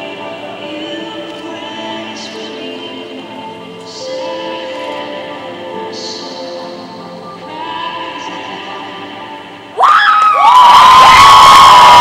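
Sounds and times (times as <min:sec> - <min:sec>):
audience cheering: 0:09.8 - 0:12.0
high-pitched screams and shouts: 0:09.8 - 0:12.0.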